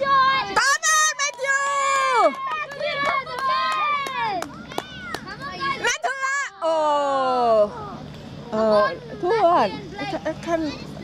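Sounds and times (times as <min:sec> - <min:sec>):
children shouting excitedly: 0:00.0 - 0:06.7.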